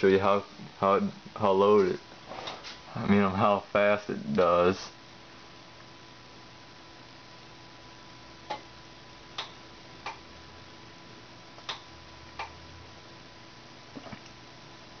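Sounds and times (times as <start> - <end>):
computer hum with thin whine: 0.0 - 15.0
sharp computer clicks: 9.4 - 10.2, 11.6 - 12.6.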